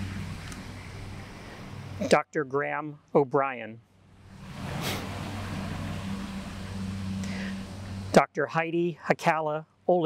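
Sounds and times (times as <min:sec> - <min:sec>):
low motor hum: 0:00.0 - 0:02.1, 0:04.0 - 0:08.2
noisy wash: 0:04.1 - 0:08.4.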